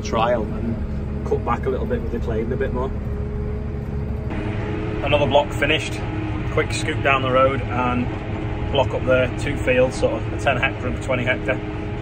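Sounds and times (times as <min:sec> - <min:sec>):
tractor engine drone: 0:00.0 - 0:12.0.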